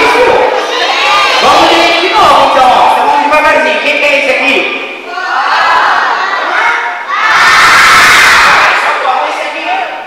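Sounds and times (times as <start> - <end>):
children shouting and cheering: 0.0 - 2.5, 5.0 - 9.1.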